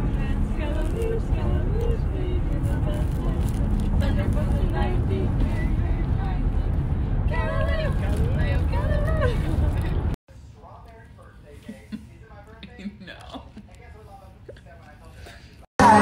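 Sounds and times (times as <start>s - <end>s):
car cabin road rumble: 0.0s - 10.2s
passengers talking indistinctly: 0.0s - 16.0s.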